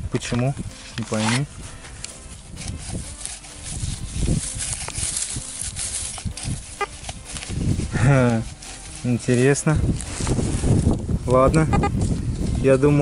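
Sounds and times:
hands rustling dry grass and soil: 0:00.2 - 0:13.0.

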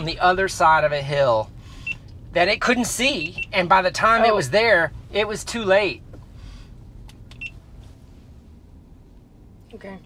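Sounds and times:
low rumble in car cabin: 0:00.0 - 0:10.0.

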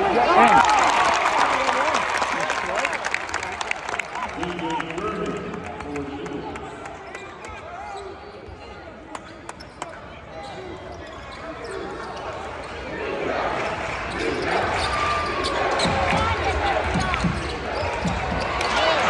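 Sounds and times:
arena crowd chatter: 0:00.0 - 0:19.0
sneakers squeaking: 0:07.1 - 0:12.9, 0:13.6 - 0:19.0.

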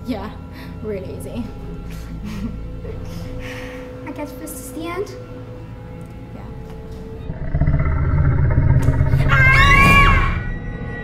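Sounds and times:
low rumble: 0:07.2 - 0:10.8
roaring shriek: 0:07.3 - 0:10.6.

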